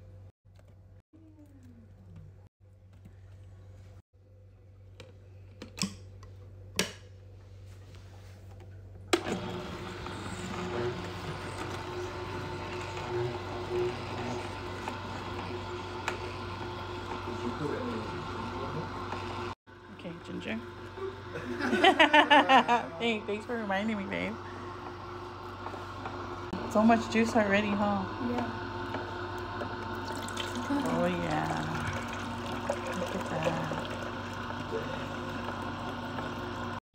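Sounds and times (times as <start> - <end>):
juicer motor humming: 9.1 - 36.8.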